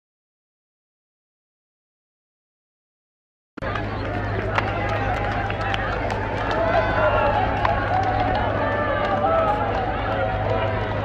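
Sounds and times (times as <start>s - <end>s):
crowd babble: 3.6s - 11.0s.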